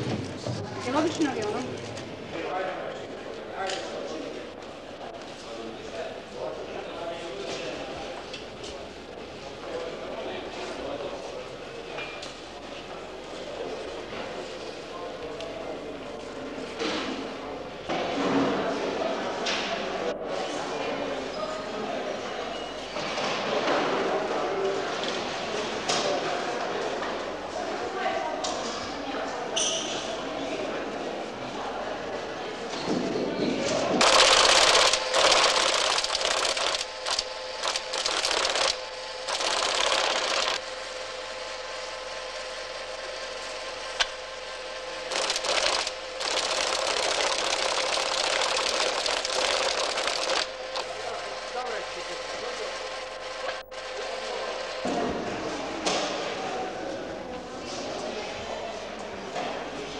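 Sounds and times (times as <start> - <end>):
machinery hum: 30.6 - 59.9
machinery clattering: 34.0 - 40.6, 45.1 - 50.8.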